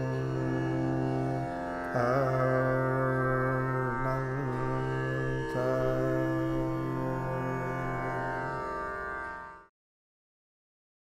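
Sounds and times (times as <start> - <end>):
man singing long wavering notes: 0.0 - 9.6
tanpura drone: 0.0 - 9.7.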